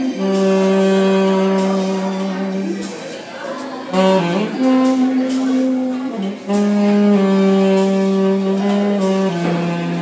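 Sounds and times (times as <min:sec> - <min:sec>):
saxophone long low note: 0:00.0 - 0:10.0.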